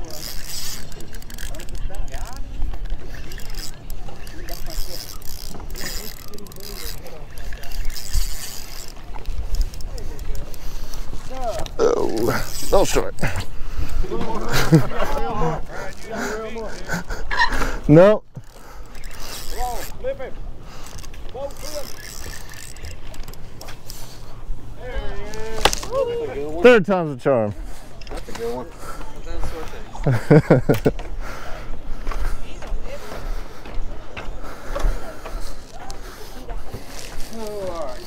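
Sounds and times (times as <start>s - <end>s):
spinning reel whirring: 0.0s - 13.1s, 18.4s - 20.1s, 20.7s - 24.2s
faint voices: 0.0s - 26.8s, 27.4s - 38.0s.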